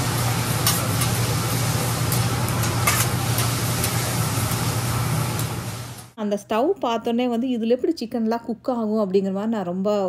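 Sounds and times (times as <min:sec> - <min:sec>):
fried rice sizzling on griddle: 0:00.0 - 0:06.2
metal spatulas scraping and clacking: 0:02.1 - 0:04.0.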